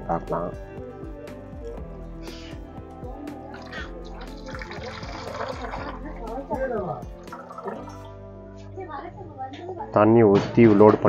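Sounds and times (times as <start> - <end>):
background music: 0.0 - 11.0
background voices: 1.4 - 8.2
water splashing and gurgling: 3.6 - 8.1.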